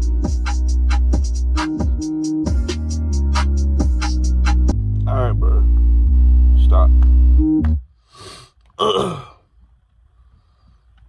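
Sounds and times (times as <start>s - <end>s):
hip-hop beat with heavy bass: 0.0s - 7.9s.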